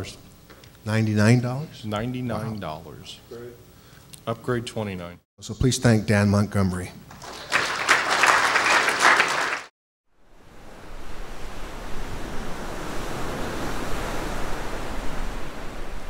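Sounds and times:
audience applauding: 7.1s - 9.7s
ocean surf: 10.4s - 16.0s.

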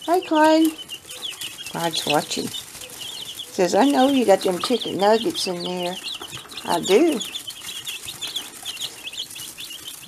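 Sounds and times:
chicks peeping: 0.0s - 10.0s.

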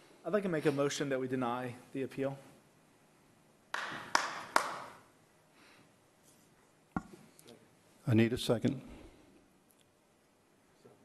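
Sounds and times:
sharp knocks with room echo: 3.8s - 5.0s.

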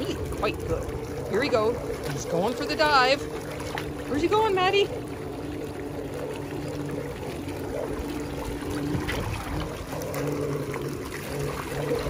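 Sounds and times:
pool cleaner pump hum: 0.0s - 12.0s
water splashing and trickling: 0.0s - 12.0s.

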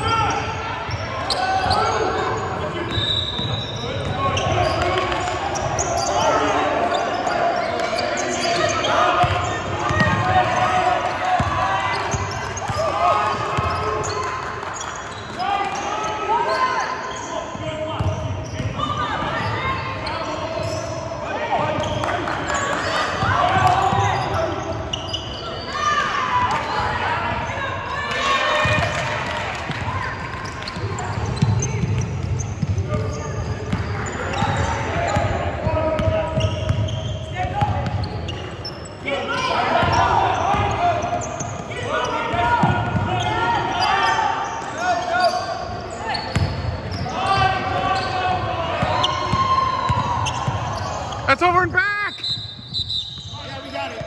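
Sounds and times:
voices calling out in hall: 0.0s - 54.0s
sneaker squeaks: 0.1s - 10.8s, 11.4s - 29.0s, 29.7s - 54.0s.

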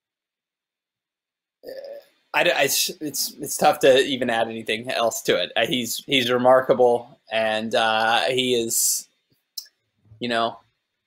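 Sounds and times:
man speaking: 1.7s - 9.0s, 10.2s - 10.6s.

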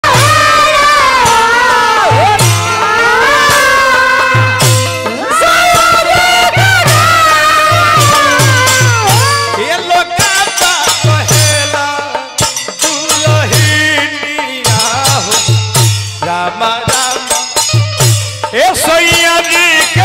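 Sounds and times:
low drum beat: 0.0s - 17.1s
sharp percussion strikes: 0.0s - 20.0s.

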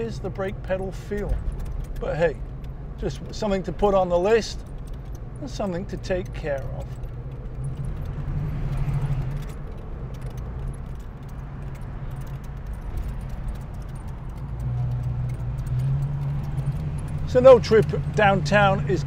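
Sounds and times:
car engine drone from inside: 0.0s - 19.0s
metallic jingling and rattling: 0.0s - 19.0s.

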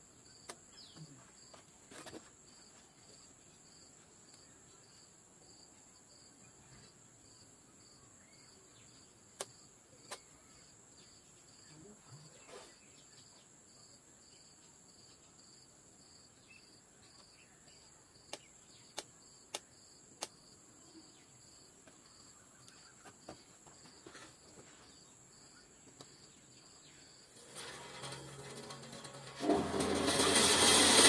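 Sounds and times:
insect chirping: 2.3s - 27.4s.

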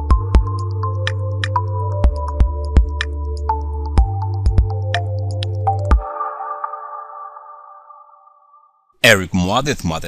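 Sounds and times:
electronic jingle chord: 3.6s - 8.9s.

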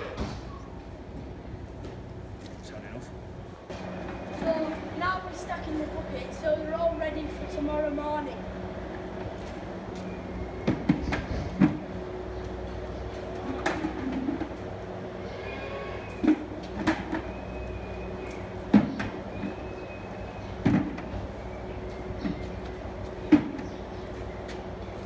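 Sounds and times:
steady low hum: 0.0s - 25.0s
plastic buckets knocking and clattering: 13.3s - 14.6s, 18.7s - 19.6s, 20.6s - 21.1s.

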